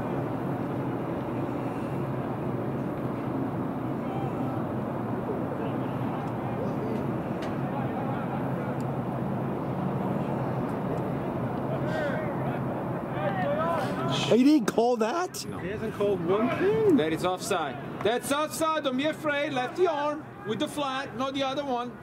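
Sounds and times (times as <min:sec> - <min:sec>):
faint distant voices: 0:00.0 - 0:22.0.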